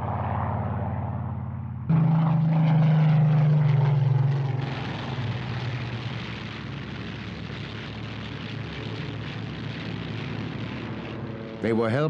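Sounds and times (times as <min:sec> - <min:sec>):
propeller aircraft droning: 0:00.0 - 0:12.0.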